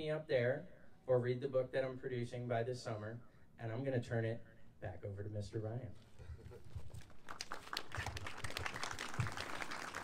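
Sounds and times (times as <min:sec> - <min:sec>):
audience clapping: 0:06.9 - 0:10.0.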